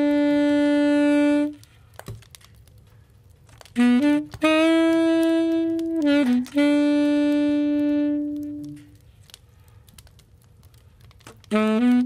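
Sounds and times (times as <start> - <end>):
long wind instrument note: 0.0 - 1.7, 3.8 - 8.9.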